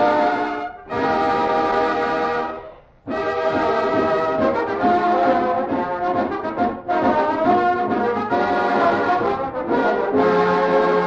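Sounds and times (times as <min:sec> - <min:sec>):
dance orchestra with brass: 0:00.0 - 0:11.0.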